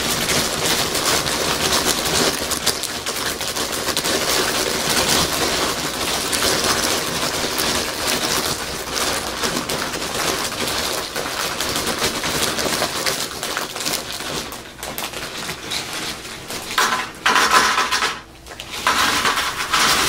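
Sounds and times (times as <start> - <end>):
plastic snack bag crinkling: 0.0 - 20.0.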